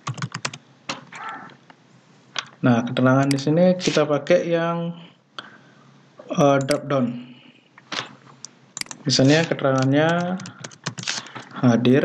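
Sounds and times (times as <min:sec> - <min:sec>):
keyboard typing clicks: 0:00.0 - 0:00.6, 0:06.6 - 0:06.8, 0:08.8 - 0:11.5.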